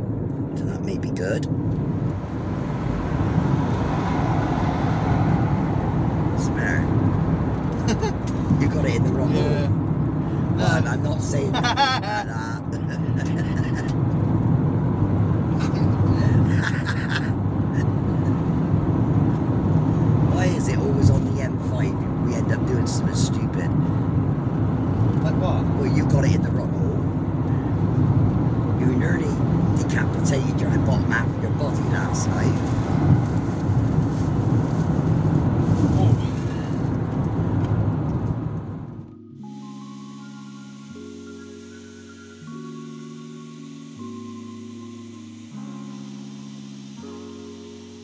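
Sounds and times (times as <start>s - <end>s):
road and engine noise in van: 0.0s - 48.0s
music with stepped notes: 38.9s - 48.0s.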